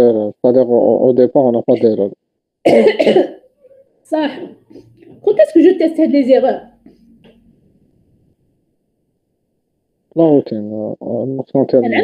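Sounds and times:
person coughing loudly: 0:02.6 - 0:03.6.

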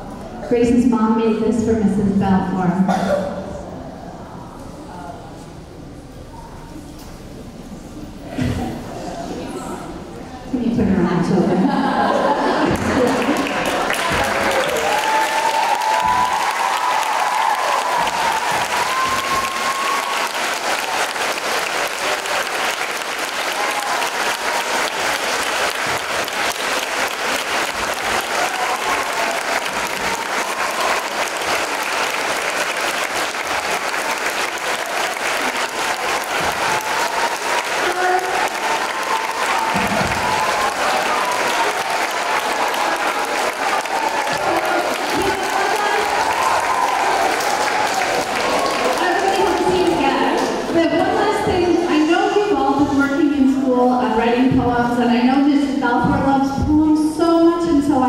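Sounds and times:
children clapping: 0:12.4 - 0:50.7.

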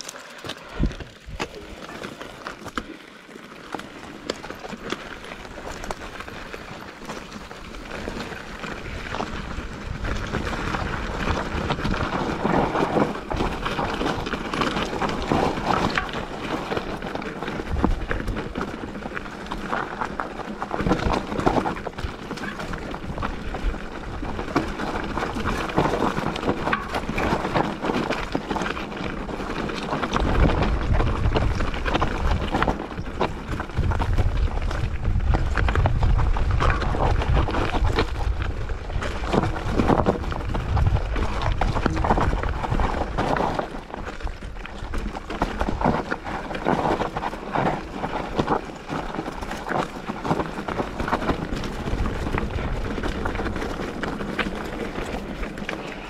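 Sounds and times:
bike tyres crunching over stones: 0:00.0 - 0:56.0
bike knocks and rattles: 0:03.5 - 0:56.0.

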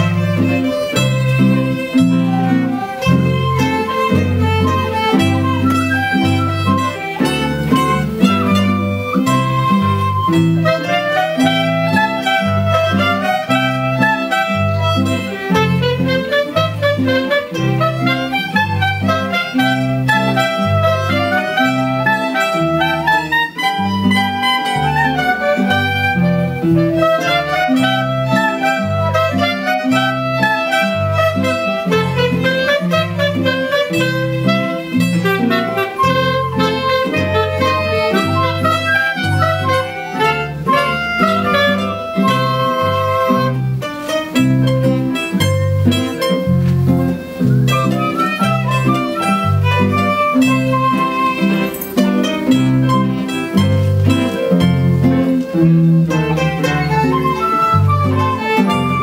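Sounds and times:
acoustic guitars: 0:00.0 - 0:59.0
clarinets and flute melody: 0:00.0 - 0:59.0
plucked bass line: 0:00.0 - 0:59.0
violins: 0:00.0 - 0:59.0.

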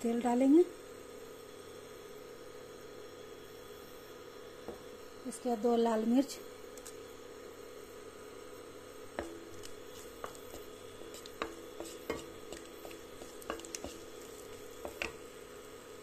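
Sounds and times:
faint steady hum: 0:00.0 - 0:16.0
spatula tapping and scraping pan: 0:09.1 - 0:15.3.

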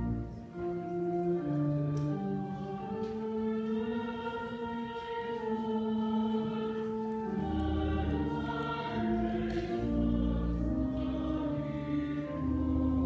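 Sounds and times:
choir singing sustained chords: 0:00.0 - 0:13.0.

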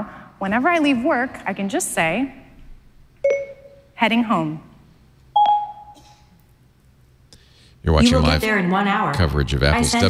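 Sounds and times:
electronic chime: 0:03.3 - 0:03.9, 0:05.4 - 0:06.0.

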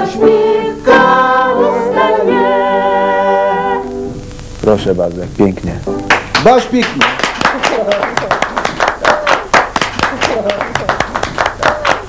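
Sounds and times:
women singing in harmony: 0:00.0 - 0:04.1
upright piano accompaniment: 0:05.6 - 0:07.2.

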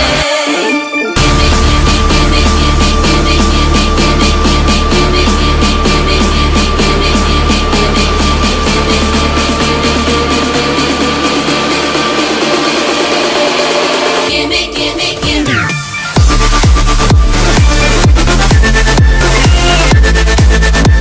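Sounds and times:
electronic dance music: 0:00.0 - 0:21.0.

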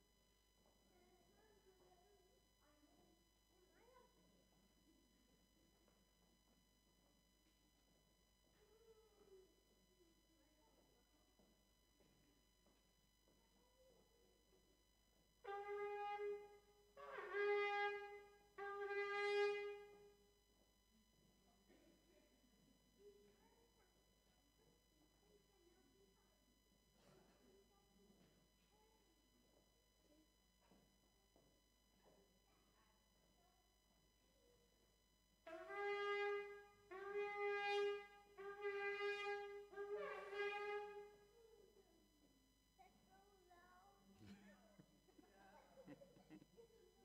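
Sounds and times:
ram's horn blasts: 0:15.4 - 0:20.2, 0:35.5 - 0:41.2.

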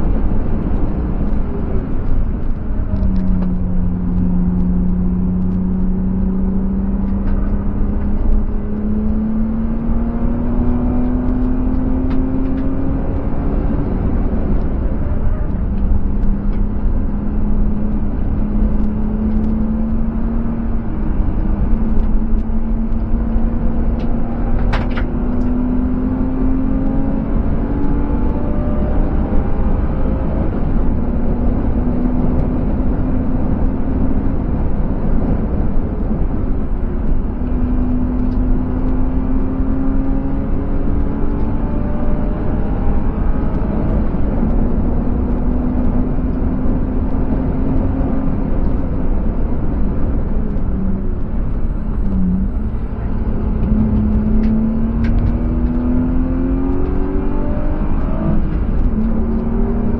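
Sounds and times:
car engine revving: 0:00.0 - 0:59.9
wind and tyre roar: 0:00.0 - 0:59.9.

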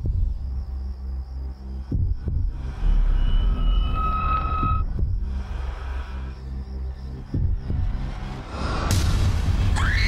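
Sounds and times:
high whining tones: 0:02.5 - 0:05.4.

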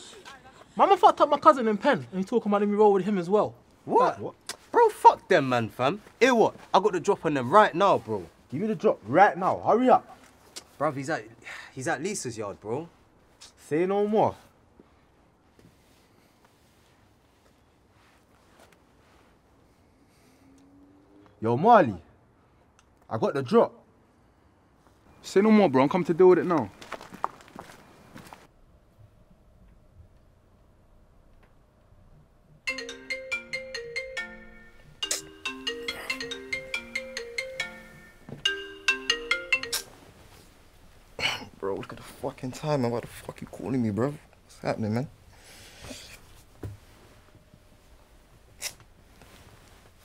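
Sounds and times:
mobile phone ringtone: 0:32.7 - 0:40.1.

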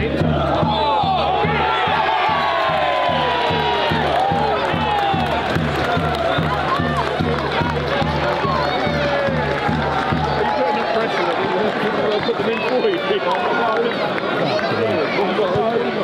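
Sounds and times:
crowd shouting and cheering: 0:00.0 - 0:16.0.

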